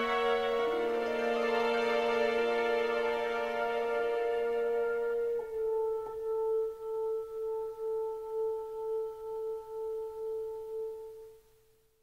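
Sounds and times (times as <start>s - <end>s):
held orchestral tone pulsing: 0.0s - 11.2s.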